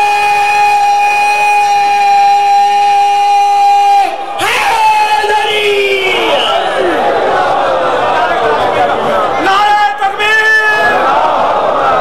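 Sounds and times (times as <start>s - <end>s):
crowd cheering: 0.0s - 12.0s.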